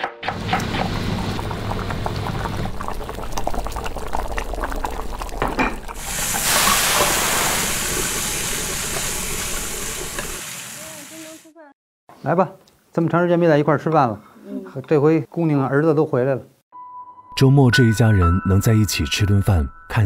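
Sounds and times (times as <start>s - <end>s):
vegetables sizzling in hot oil: 6.0s - 11.5s.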